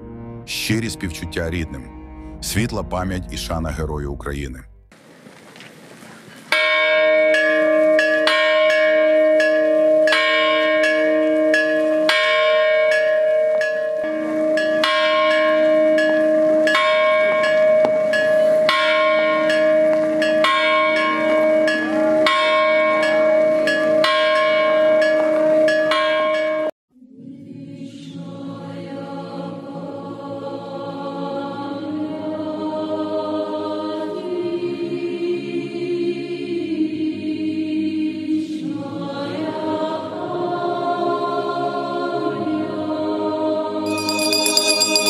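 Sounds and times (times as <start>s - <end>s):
church bells tolling: 6.6s - 26.7s, 43.9s - 45.0s.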